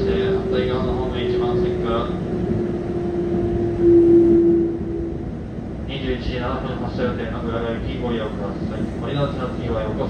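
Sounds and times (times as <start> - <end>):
train motor whine: 0.0 - 5.7
train interior rumble: 0.0 - 10.0.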